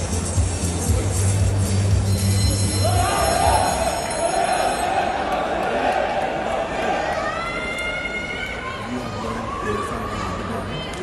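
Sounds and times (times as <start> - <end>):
crowd noise in arena: 0.0 - 11.0.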